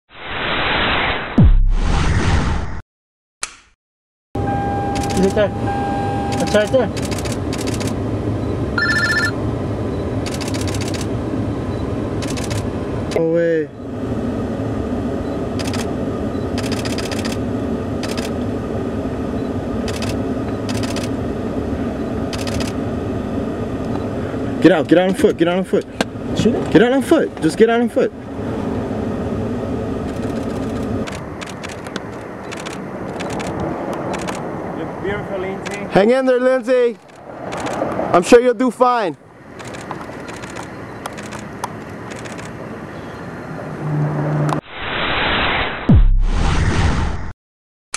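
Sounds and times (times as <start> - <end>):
car engine humming: 4.4 - 36.0
traffic rumble: 4.4 - 44.6
camera shutter clicks: 5.0 - 5.4, 6.3 - 8.0, 10.2 - 11.1, 12.2 - 12.7, 15.6 - 15.9, 16.6 - 17.4, 18.0 - 18.3, 19.9 - 21.1, 22.3 - 22.8, 30.1 - 34.4, 35.6 - 35.9, 37.0 - 37.9, 39.6 - 41.5, 42.1 - 42.6.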